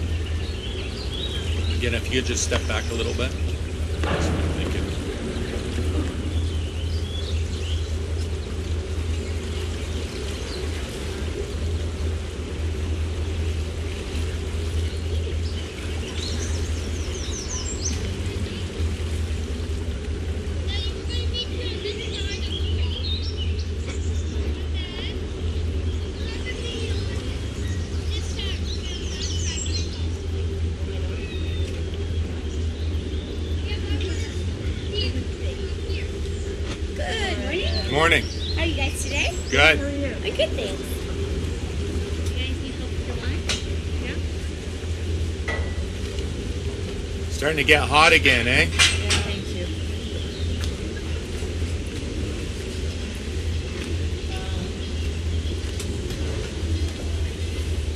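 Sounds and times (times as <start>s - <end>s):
boat engine idling: 0.0s - 57.9s
songbirds chirping: 0.0s - 57.9s.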